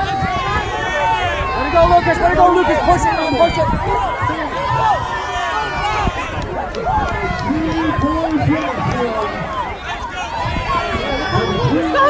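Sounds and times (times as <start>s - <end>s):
crowd shouting and cheering: 0.0s - 12.0s.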